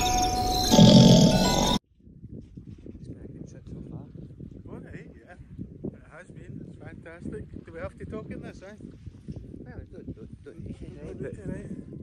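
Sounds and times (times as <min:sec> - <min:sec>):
loud snore: 0:00.6 - 0:01.8.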